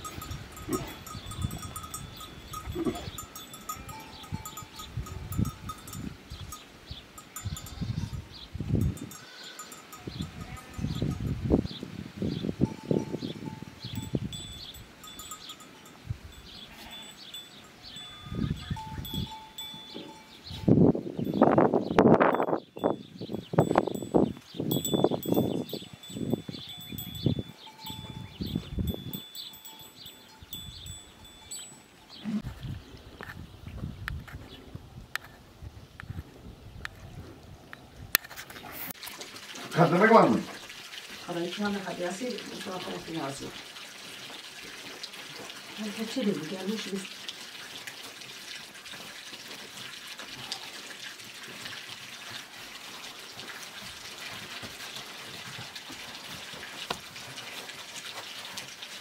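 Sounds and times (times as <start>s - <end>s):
animal bells clinking: 0.0s - 11.8s, 12.6s - 32.4s.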